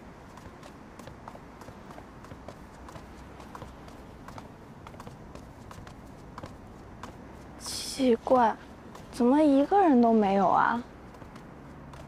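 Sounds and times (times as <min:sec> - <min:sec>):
brisk clicking footsteps: 0:00.0 - 0:12.0
faint low hum: 0:00.0 - 0:12.0.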